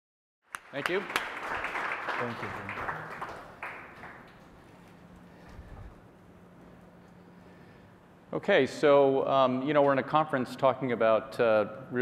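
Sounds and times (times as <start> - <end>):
audience applause: 0.5 - 4.6.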